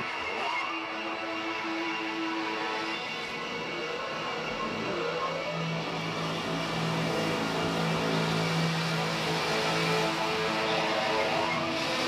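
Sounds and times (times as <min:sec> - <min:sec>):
rock music sustained notes: 0:00.0 - 0:12.0.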